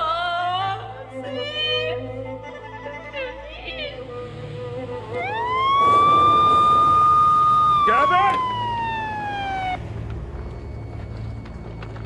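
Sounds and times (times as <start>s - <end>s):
siren wailing: 4.7s - 12.0s.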